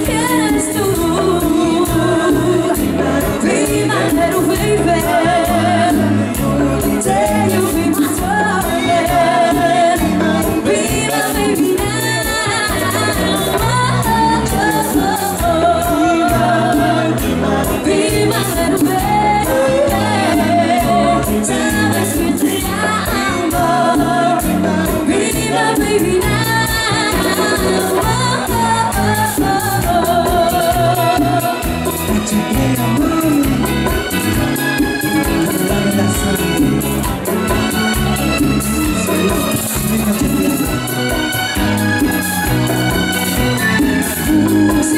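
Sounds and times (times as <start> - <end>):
drum kit: 0.0 - 44.9
electric bass: 0.0 - 44.9
keyboards: 0.0 - 44.9
voices singing: 0.0 - 44.9.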